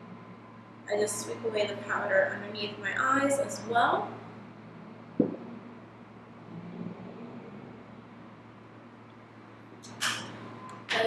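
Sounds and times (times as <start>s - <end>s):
steady low hum: 0.0s - 11.0s
short thump: 5.2s - 5.5s.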